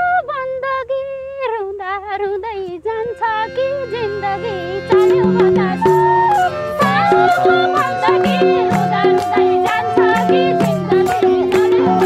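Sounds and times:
woman singing folk song: 0.0s - 12.0s.

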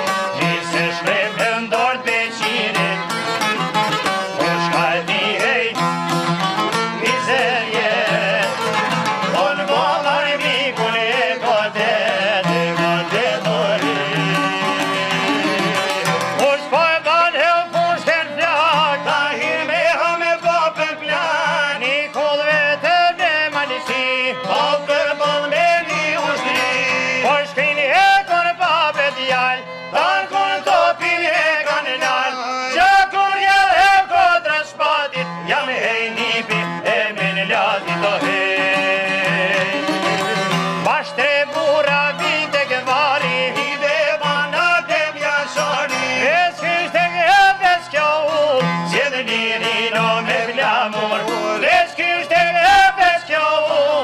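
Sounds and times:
plucked string accompaniment: 0.0s - 54.0s.

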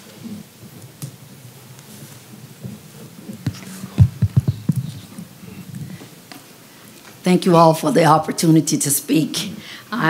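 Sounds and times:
microphone handling knocks: 3.4s - 5.9s.

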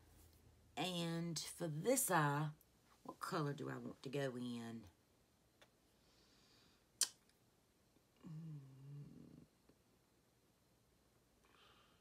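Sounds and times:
woman humming hmm: 8.2s - 9.6s.

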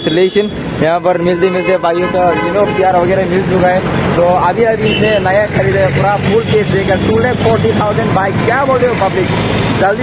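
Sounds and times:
man talking: 0.0s - 10.0s
street traffic hum: 0.0s - 10.0s.

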